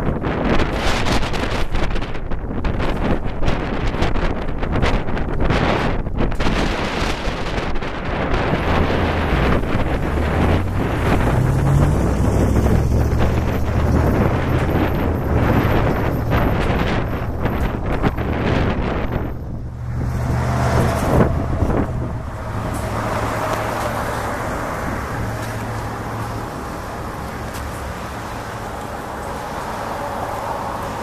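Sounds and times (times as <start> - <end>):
traffic hum: 0.0 - 31.0
trucks passing: 0.0 - 31.0.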